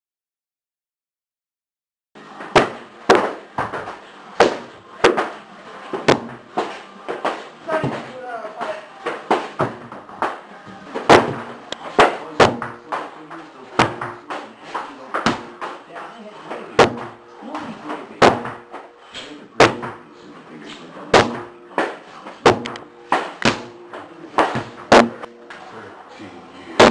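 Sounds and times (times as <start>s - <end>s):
murmur of voices: 2.2s - 26.9s
sharp smacks and thuds: 21.1s - 23.7s, 24.4s - 25.3s.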